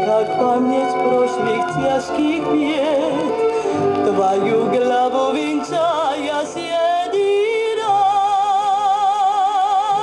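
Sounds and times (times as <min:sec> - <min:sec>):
woman singing with vibrato: 0:00.0 - 0:10.0.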